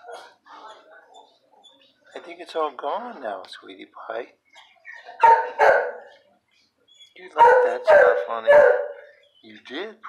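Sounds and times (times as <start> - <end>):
dog barking: 5.0 - 6.1, 7.4 - 9.2.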